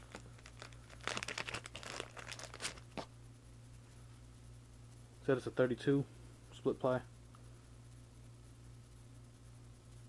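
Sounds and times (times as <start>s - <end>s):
plastic bag crinkling: 0.0s - 3.1s.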